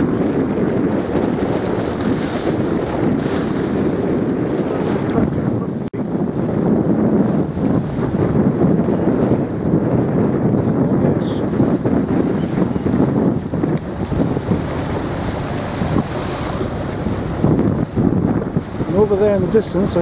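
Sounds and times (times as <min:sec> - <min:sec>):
waves washing: 0:00.0 - 0:20.0
wind buffeting microphone: 0:00.0 - 0:20.0.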